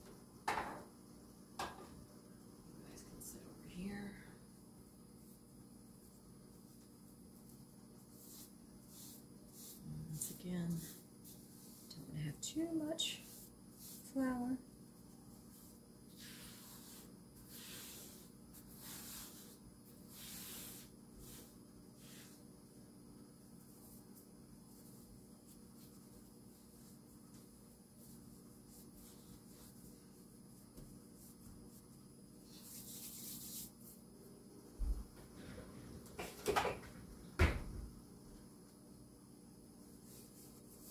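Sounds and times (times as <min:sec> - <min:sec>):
hands rubbing dough: 0:05.2 - 0:22.5, 0:23.5 - 0:34.1, 0:39.9 - 0:40.9
brushing swishes on mat: 0:15.1 - 0:22.4, 0:23.6 - 0:34.0.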